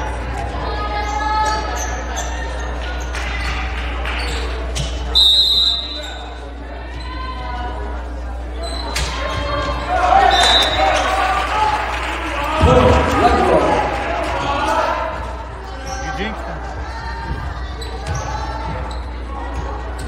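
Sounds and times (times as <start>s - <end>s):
shouts echoing in gym: 0.0s - 20.0s.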